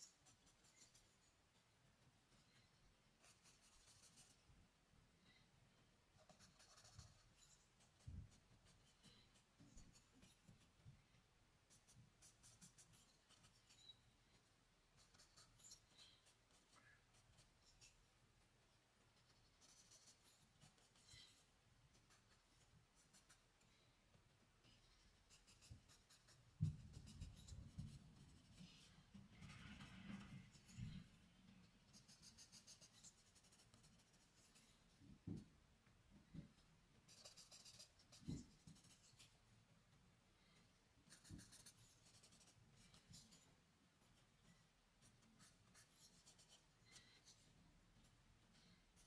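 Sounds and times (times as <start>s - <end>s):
charcoal scratching on paper: 0.0s - 1.5s, 3.2s - 4.5s, 6.2s - 10.8s, 11.7s - 14.0s, 14.9s - 18.0s, 19.1s - 23.6s, 24.8s - 31.1s, 31.7s - 34.8s, 37.1s - 39.4s, 41.0s - 47.5s.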